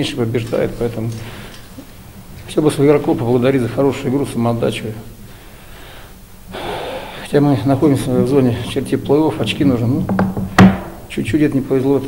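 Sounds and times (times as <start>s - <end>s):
man speaking: 2.5s - 5.1s, 7.2s - 10.2s, 11.1s - 12.0s
man breathing in: 5.2s - 7.3s.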